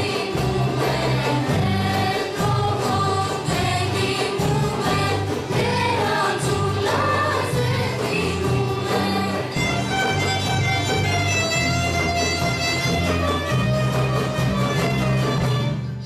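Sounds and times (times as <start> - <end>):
voices singing in unison: 0.0 - 10.3
frame drums: 0.0 - 16.0
plucked string instruments: 0.0 - 16.0.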